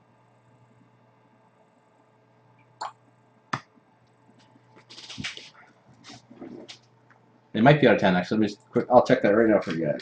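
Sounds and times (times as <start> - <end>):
cards rustling and clicking: 4.8 - 6.7.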